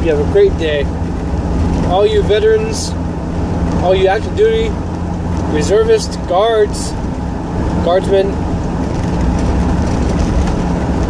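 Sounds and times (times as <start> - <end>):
vehicle cabin road rumble: 0.0 - 11.0.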